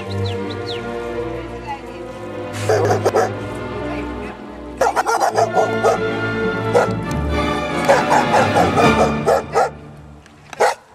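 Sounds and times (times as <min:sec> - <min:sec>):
background music: 0:00.0 - 0:10.9
dog barking: 0:02.6 - 0:03.4, 0:04.8 - 0:06.1, 0:06.7 - 0:07.0, 0:07.8 - 0:09.8, 0:10.6 - 0:10.9.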